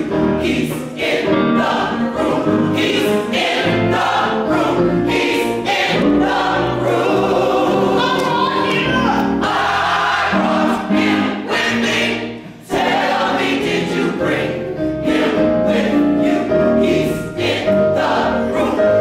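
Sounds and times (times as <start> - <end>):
gospel choir singing: 0.0 - 19.0.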